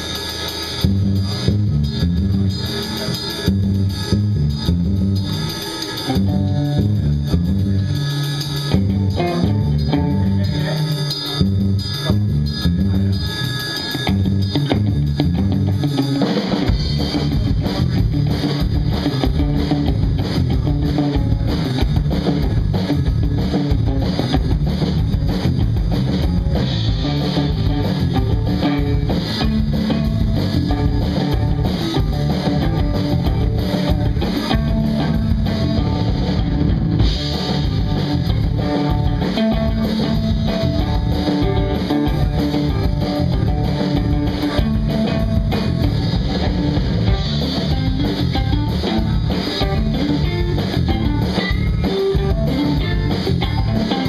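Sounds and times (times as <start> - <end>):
drum kit: 0.0 - 54.0
electric bass: 0.0 - 54.0
electric guitar: 0.0 - 54.0
rock band playing: 0.0 - 54.0.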